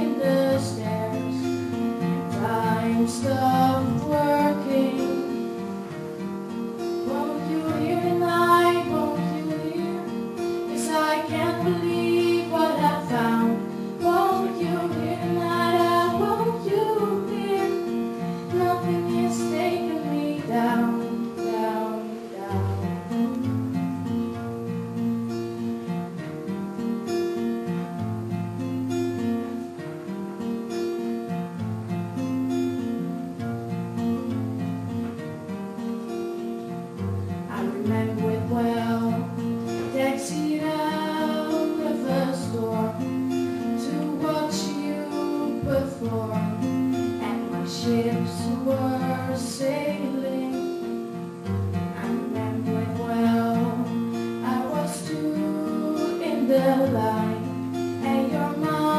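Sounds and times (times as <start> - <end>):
acoustic guitar strumming and plucking: 0.0 - 58.9.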